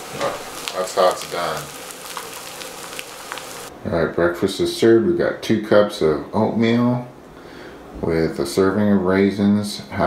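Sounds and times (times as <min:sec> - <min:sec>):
eggs sizzling in a frying pan: 0:00.0 - 0:03.7
man talking: 0:00.2 - 0:01.7, 0:03.7 - 0:07.2, 0:08.0 - 0:10.0.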